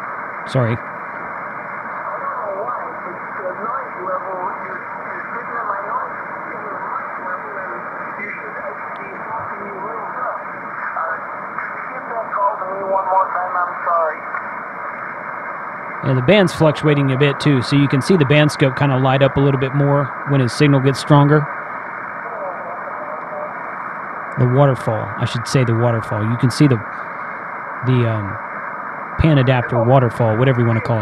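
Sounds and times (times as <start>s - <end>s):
radio static and hiss: 0.0s - 31.0s
radio voice through speaker: 0.5s - 0.8s, 1.8s - 14.4s, 16.0s - 21.6s, 22.2s - 23.6s, 24.4s - 28.4s, 29.2s - 31.0s.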